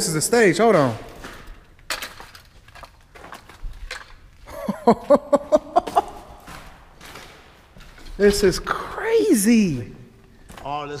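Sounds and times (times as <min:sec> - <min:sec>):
footsteps on debris: 0:00.6 - 0:08.8
man laughing: 0:04.5 - 0:06.6.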